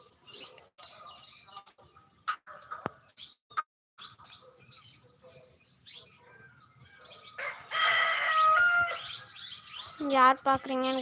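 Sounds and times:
rooster crowing: 7.4s - 9.2s.

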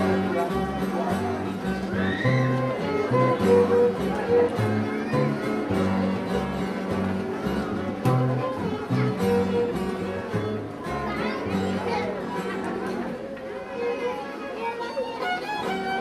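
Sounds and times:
string band playing dance tune: 0.0s - 16.0s
voices: 0.0s - 16.0s.

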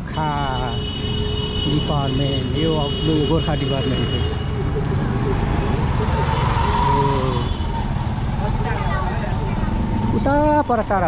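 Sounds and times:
road noise: 0.0s - 11.0s
people's voices: 1.7s - 11.0s.

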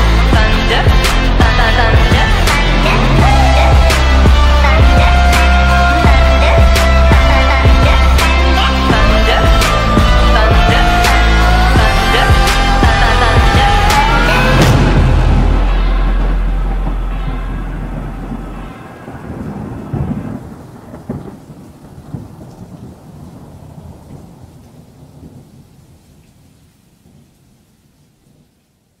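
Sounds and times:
rain: 0.0s - 29.0s
rolling thunder: 0.3s - 26.2s.

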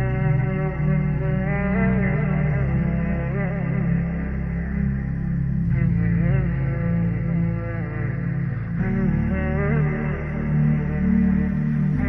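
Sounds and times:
chant-like melody: 0.0s - 12.0s
low drone: 0.0s - 12.0s.

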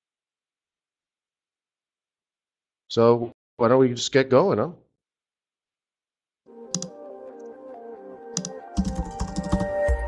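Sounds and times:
background music: 6.5s - 10.0s
keyboard typing clicks: 6.7s - 7.6s, 8.4s - 9.8s.

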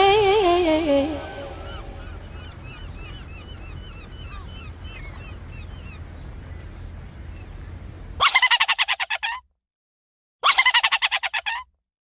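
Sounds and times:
birds chirping: 0.0s - 8.2s.

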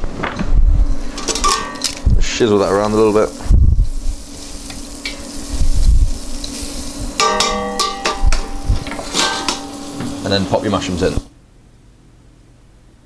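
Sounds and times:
metallic ring: 1.4s - 2.0s, 7.2s - 10.1s
butter sizzling in a pan: 2.4s - 11.3s.

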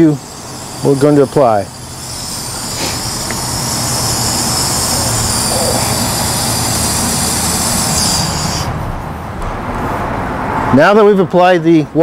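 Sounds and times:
water hissing through hose: 0.0s - 8.9s
low machine hum: 0.0s - 10.2s.

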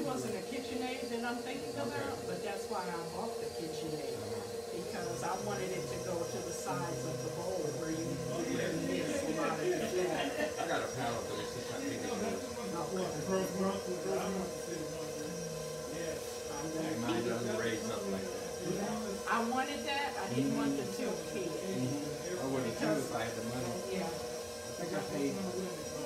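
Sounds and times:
stand mixer motor humming: 0.0s - 26.0s.

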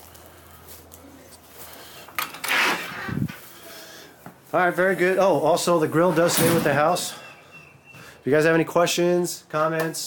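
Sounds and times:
screen door creaking: 2.2s - 3.3s.

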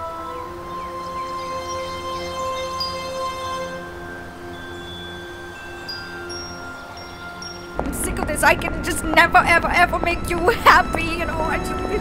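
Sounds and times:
metal wind chime ringing: 2.8s - 12.0s.

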